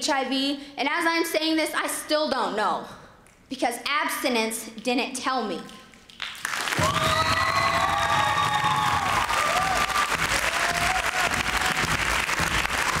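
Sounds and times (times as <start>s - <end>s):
audience clapping: 6.1s - 13.0s.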